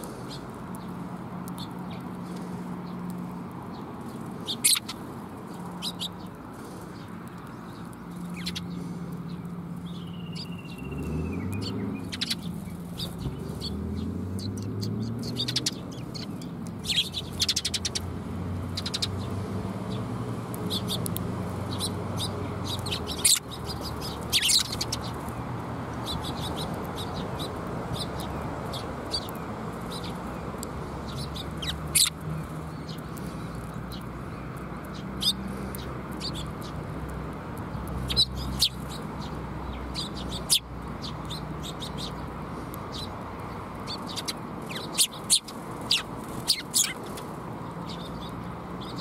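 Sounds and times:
sparrows chirping: 0.0 - 49.0
gliding bird call: 21.8 - 25.0.

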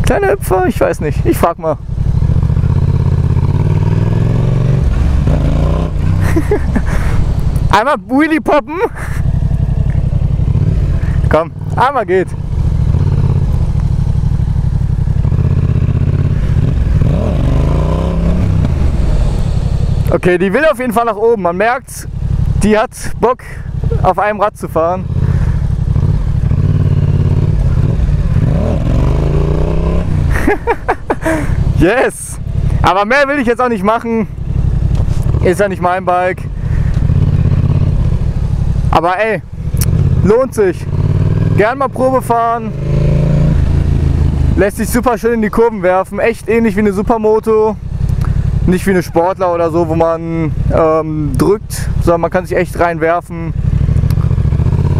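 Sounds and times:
motorcycle engine revving hard: 1.8 - 7.5, 9.0 - 21.0, 24.8 - 32.9, 34.4 - 45.0, 53.5 - 54.9.

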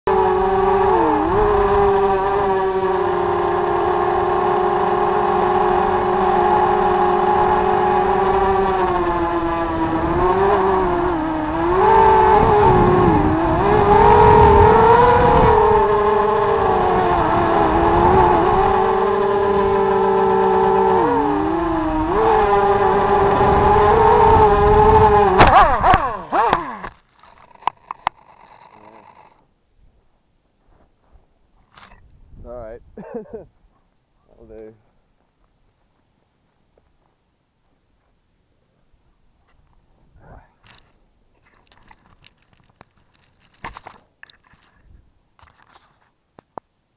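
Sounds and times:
drone motors whining: 0.1 - 29.4.

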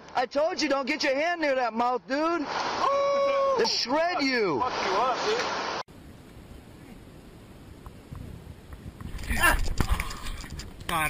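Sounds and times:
man crying out: 2.8 - 4.0
wind on microphone: 7.7 - 11.0.

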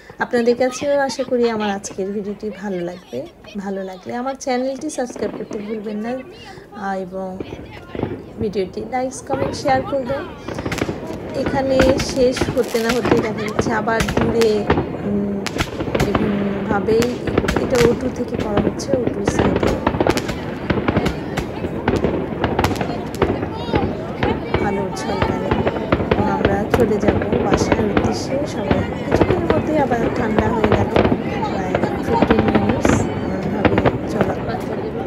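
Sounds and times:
fireworks bangs and crackles: 0.0 - 35.0
people talking: 0.0 - 35.0.

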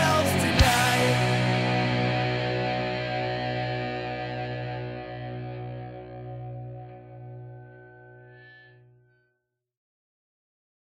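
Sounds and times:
distorted electric guitar chord: 0.0 - 9.2.

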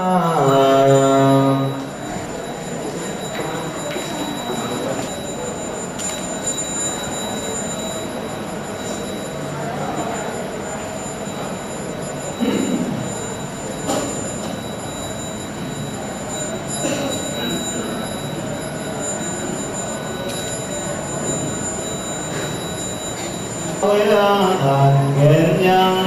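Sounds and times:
high steady whine: 0.0 - 26.0.

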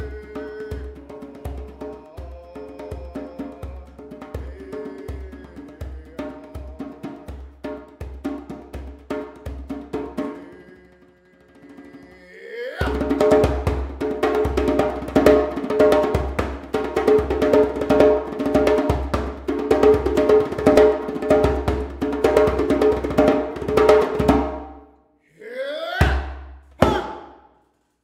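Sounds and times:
djembe played with hands: 0.0 - 12.0, 12.8 - 24.8.

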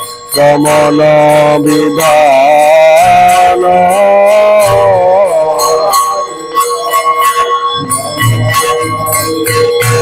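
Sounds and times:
hand bell ringing: 0.0 - 10.0.

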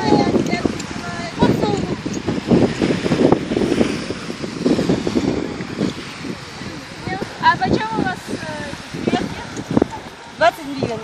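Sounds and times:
small waves breaking on sand: 0.0 - 11.0
wind buffeting microphone: 0.0 - 11.0.

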